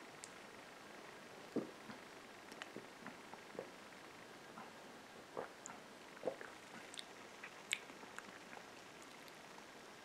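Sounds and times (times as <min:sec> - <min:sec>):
mouth and lip smacks: 0:05.4 - 0:09.4.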